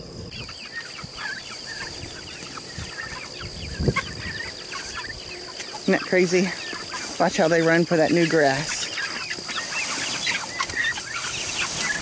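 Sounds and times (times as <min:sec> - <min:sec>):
chicks cheeping: 0:00.0 - 0:12.0
high insect trill: 0:00.0 - 0:12.0.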